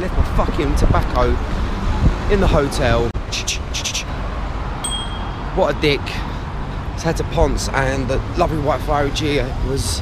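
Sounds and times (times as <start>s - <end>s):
street traffic rumble: 0.0s - 10.0s
thin high ring: 4.8s - 5.5s.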